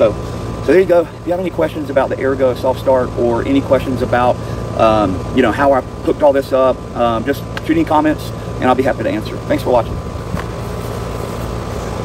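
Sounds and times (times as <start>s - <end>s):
compressor humming: 0.0s - 12.0s
condenser fan whirring: 0.0s - 12.0s.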